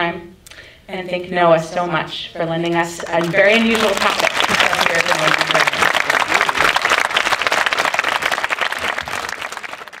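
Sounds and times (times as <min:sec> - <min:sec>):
audience applauding: 0:03.1 - 0:10.0.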